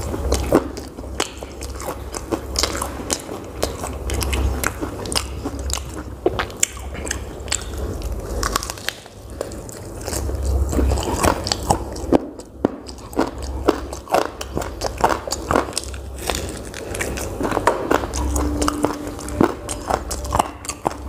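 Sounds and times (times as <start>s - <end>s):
chewing and biting: 0.0s - 21.0s
steady low hum: 0.0s - 21.0s.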